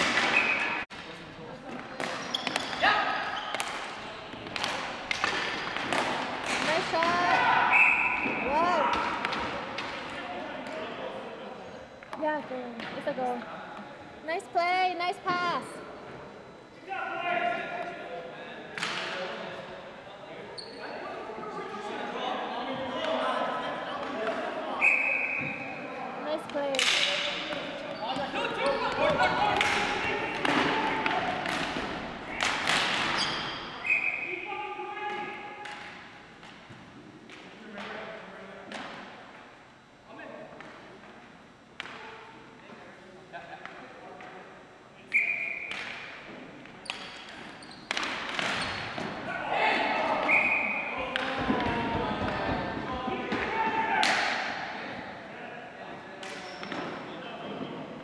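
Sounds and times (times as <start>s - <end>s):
hockey sticks and ball clacking: 0.0s - 10.8s, 18.8s - 19.2s, 26.3s - 34.2s, 35.0s - 38.0s, 41.8s - 42.1s, 45.2s - 49.3s, 50.0s - 54.6s, 56.2s - 57.9s
players' voices: 0.0s - 41.1s, 41.8s - 58.0s.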